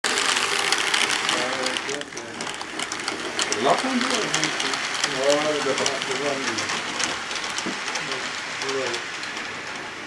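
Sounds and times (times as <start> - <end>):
model train wheels clicking: 0.0 - 10.0.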